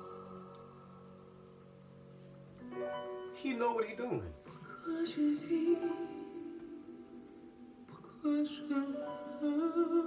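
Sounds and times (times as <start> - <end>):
soft instrumental backing: 0.0 - 10.0.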